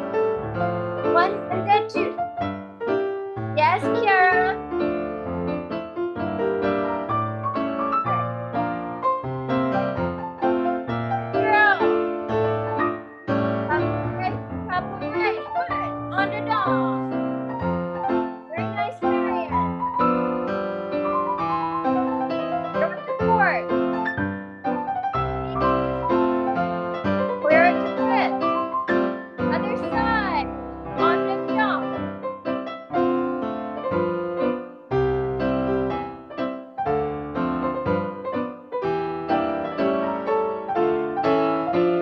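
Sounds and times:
solo piano playing: 0.0s - 42.0s
person speaking: 1.0s - 2.2s, 3.6s - 4.6s, 11.4s - 11.9s, 13.6s - 17.2s, 18.5s - 19.6s, 22.8s - 23.7s, 27.3s - 28.4s, 29.5s - 32.0s.

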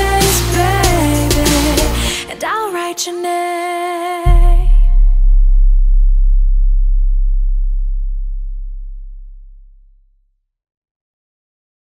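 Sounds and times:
deep bass boom: 4.3s - 10.2s.

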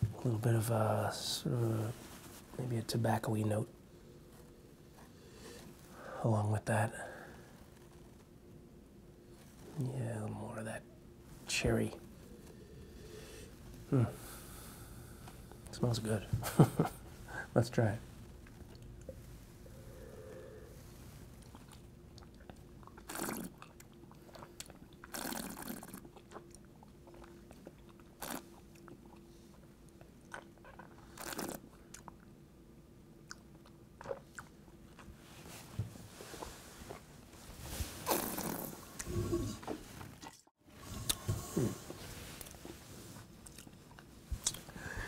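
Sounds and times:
person slurping wine: 22.9s - 23.7s, 24.3s - 26.0s, 28.2s - 28.4s, 31.2s - 31.6s, 38.0s - 39.8s.

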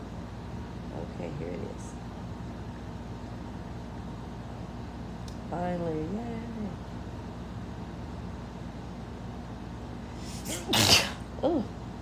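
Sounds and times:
steady low hum: 0.0s - 12.0s
woman sneezing: 10.3s - 11.3s.

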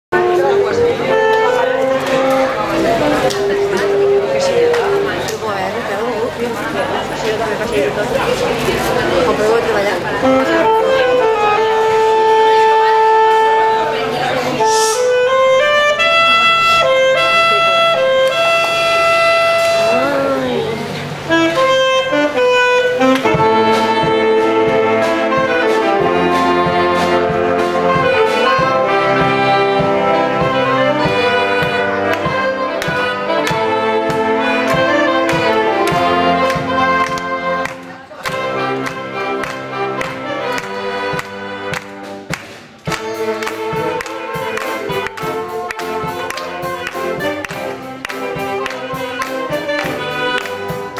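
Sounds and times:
saxophone ensemble playing: 0.1s - 50.9s.

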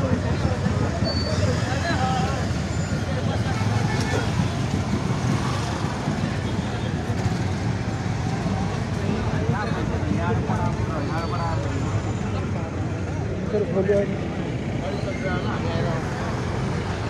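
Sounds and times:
people talking: 0.0s - 7.5s, 8.3s - 17.0s
traffic engines running: 0.0s - 17.0s.

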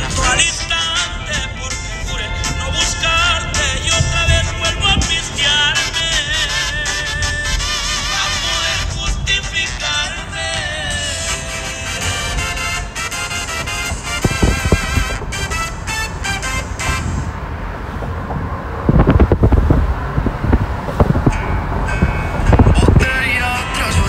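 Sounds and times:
song with vibrato melody: 0.0s - 17.6s, 21.4s - 24.0s
road noise: 0.0s - 24.0s
wind buffeting microphone: 0.0s - 24.0s.

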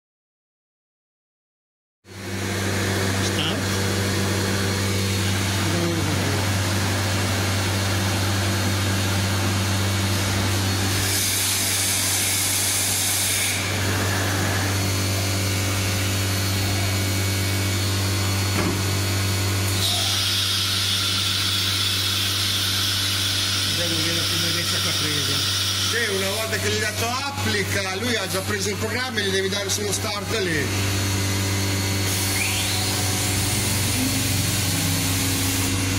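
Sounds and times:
machine hum: 2.1s - 19.9s, 20.7s - 35.9s.

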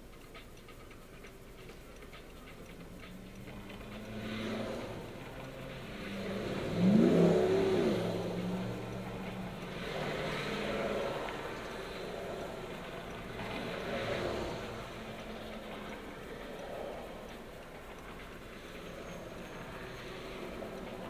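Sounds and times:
cars driving past: 1.5s - 21.0s.

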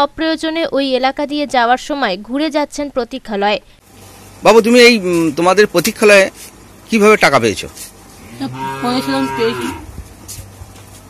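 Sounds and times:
cow mooing: 8.2s - 9.9s.

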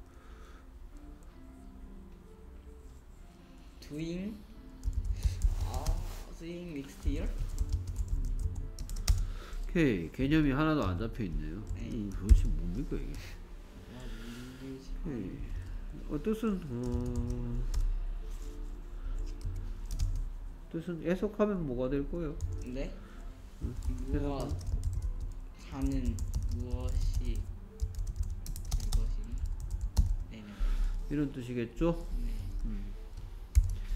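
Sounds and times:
person speaking: 9.7s - 17.8s, 20.6s - 24.8s.

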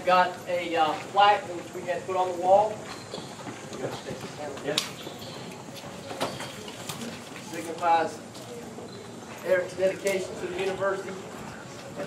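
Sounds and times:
people standing around: 0.0s - 12.0s.

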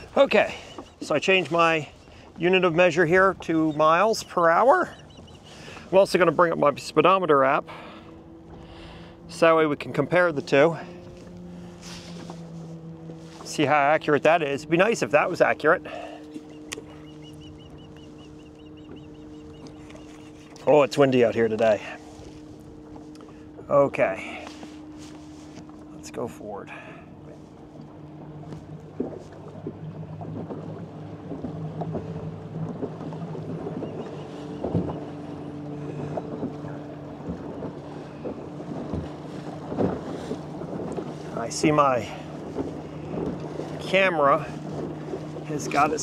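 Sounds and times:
low hum: 0.0s - 46.0s
water slapping against hull: 0.0s - 46.0s
bird chirping: 3.7s - 5.7s, 16.2s - 20.7s
wind buffeting microphone: 26.7s - 46.0s.

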